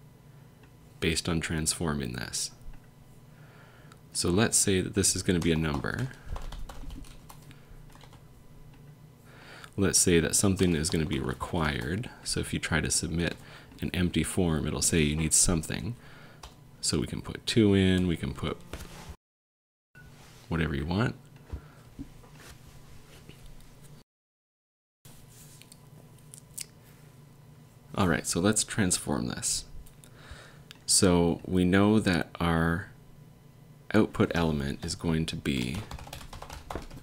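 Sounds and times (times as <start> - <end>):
steady low hum: 0.0 - 19.2, 25.1 - 37.0
computer keyboard keystrokes: 5.3 - 8.2, 35.6 - 37.0.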